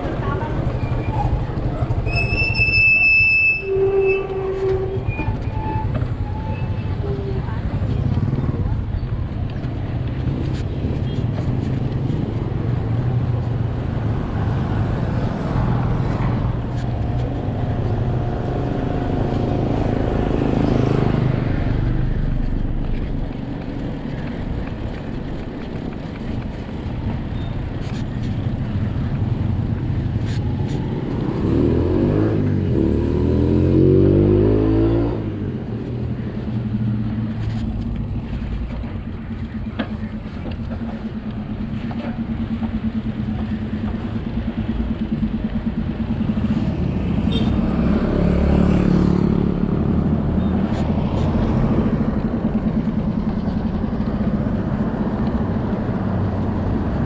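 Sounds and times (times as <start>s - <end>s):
bike tyre rumble on concrete: 0.0s - 33.1s.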